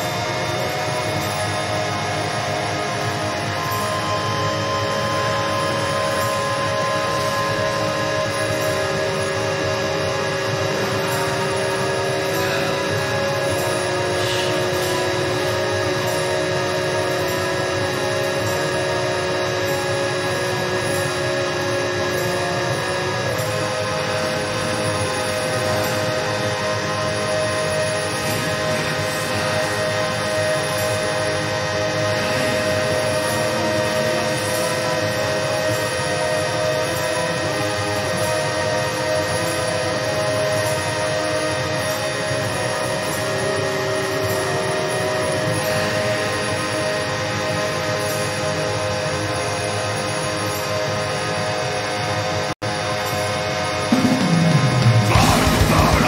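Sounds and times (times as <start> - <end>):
dark ambient drone: 0.0 - 56.0.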